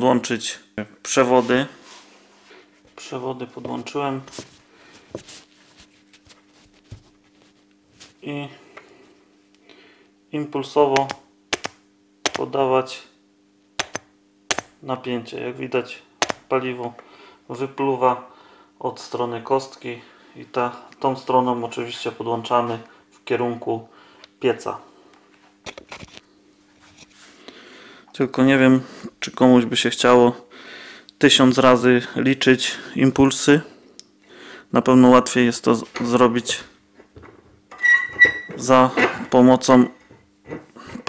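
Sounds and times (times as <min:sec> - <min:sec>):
faint steady hum: 0:00.0 - 0:41.0.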